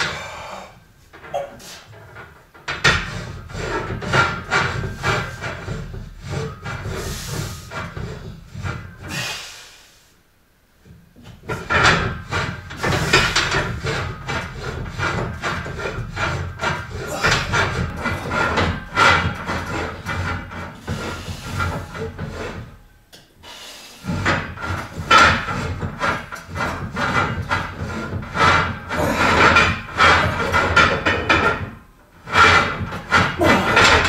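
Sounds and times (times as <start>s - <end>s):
man breathing hard: 0.0s - 0.8s, 9.0s - 10.2s.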